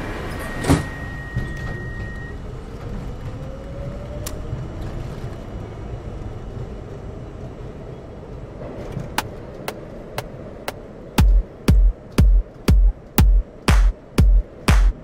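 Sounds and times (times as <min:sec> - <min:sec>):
train carriage rumble: 0:00.0 - 0:15.0.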